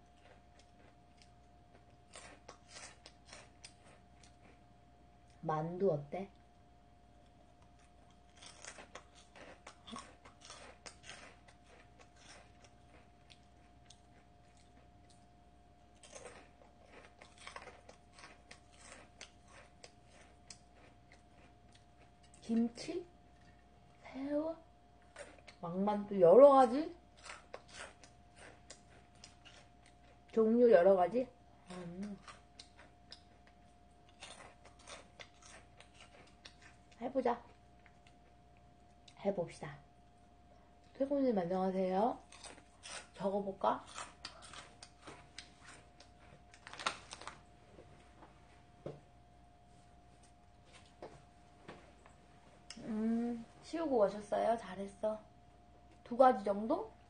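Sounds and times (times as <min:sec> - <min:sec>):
faint steady hum: 0:00.0 - 0:57.0
crisp snack crunching: 0:00.1 - 0:04.6, 0:07.6 - 0:15.3, 0:15.9 - 0:22.5, 0:32.1 - 0:36.8, 0:43.8 - 0:47.5.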